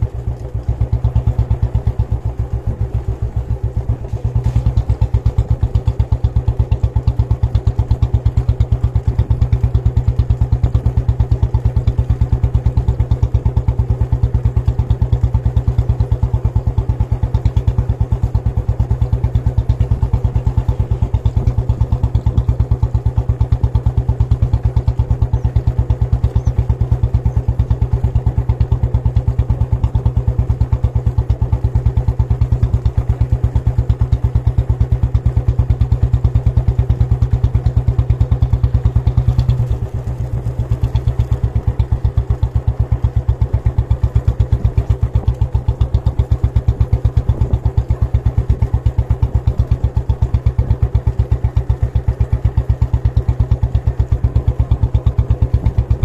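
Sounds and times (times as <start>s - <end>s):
motorcycle engine running: 0.0s - 56.0s.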